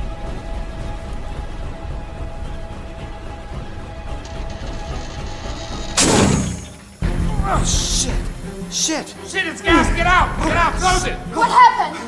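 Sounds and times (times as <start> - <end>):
tense film score music: 0.0 - 12.0.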